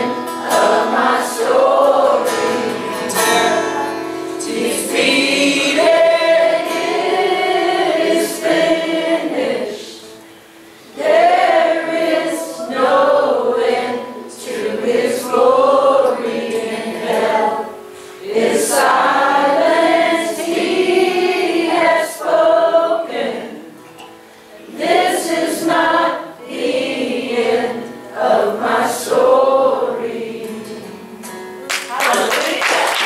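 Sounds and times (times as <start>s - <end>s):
guitars: 0.0s - 33.0s
people singing together: 0.0s - 33.0s.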